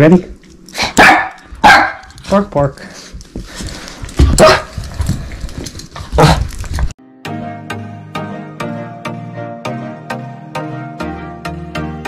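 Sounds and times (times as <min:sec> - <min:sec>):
small dog barking: 0:01.0 - 0:02.1.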